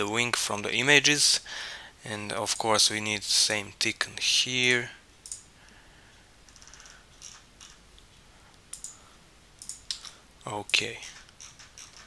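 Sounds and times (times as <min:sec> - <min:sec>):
faint computer mouse clicks: 0:08.7 - 0:09.0.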